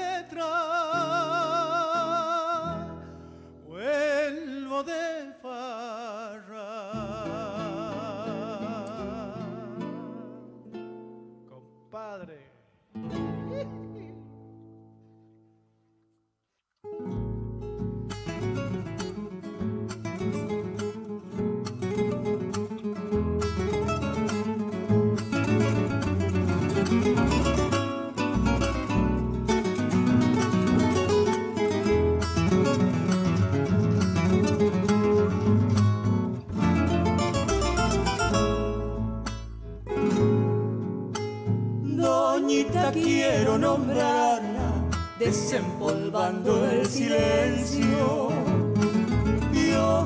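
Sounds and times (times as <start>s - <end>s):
plucked acoustic guitar: 0.0s - 5.2s, 6.8s - 12.2s, 12.9s - 15.6s, 16.8s - 50.0s
bass notes: 17.1s - 22.5s, 23.1s - 50.0s.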